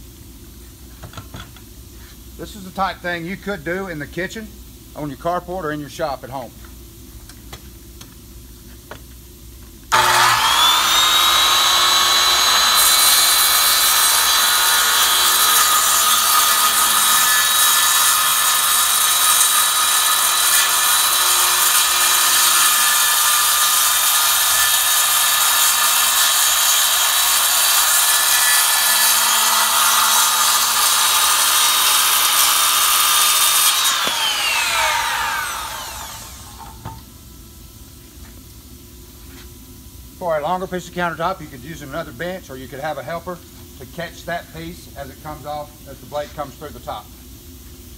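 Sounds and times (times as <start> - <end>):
circular saw motor whine: 9.9 - 17.4, 29.5 - 36.9
saw cutting countertop: 9.9 - 37.0.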